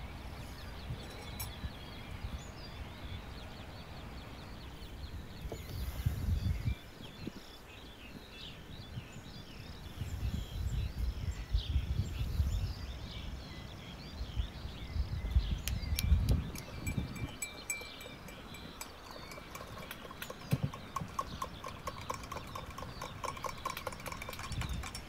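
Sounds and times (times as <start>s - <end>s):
spoon clinking in glass: 16.7s - 20.4s.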